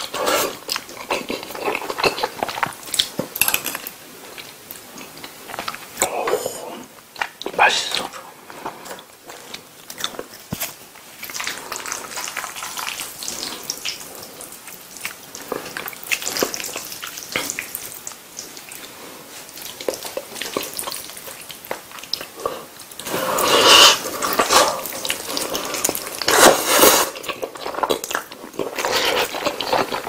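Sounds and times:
close chewing and mouth smacks: 0.0 - 6.4, 7.0 - 30.0.

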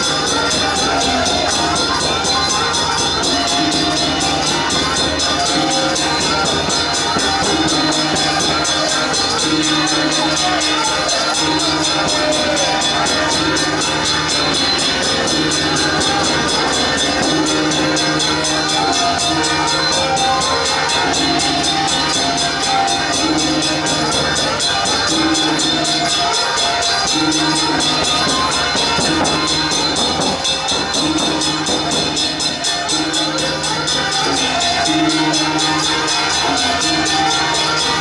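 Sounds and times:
hanging gongs beaten: 0.0 - 38.0.

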